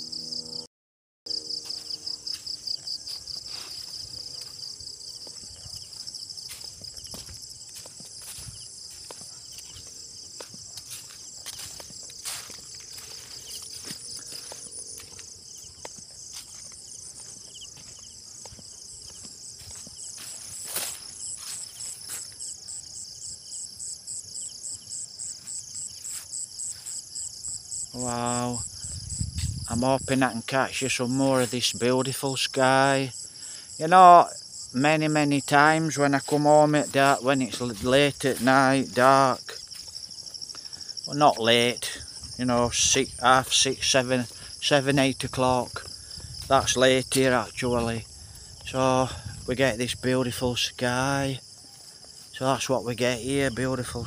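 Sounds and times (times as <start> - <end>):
night insects chirping: 1.3 - 54.0.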